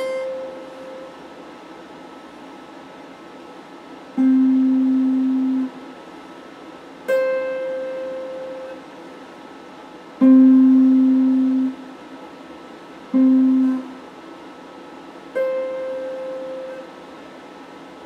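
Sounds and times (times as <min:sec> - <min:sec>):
clean electric guitar notes: 0:13.1 - 0:14.0.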